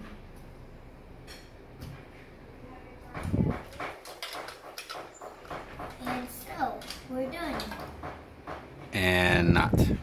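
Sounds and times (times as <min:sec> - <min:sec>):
plastic toy pieces clicking: 0:04.0 - 0:05.1.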